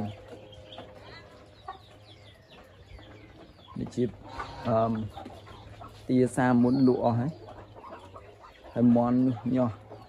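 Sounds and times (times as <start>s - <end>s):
chickens clucking: 0.0s - 10.0s.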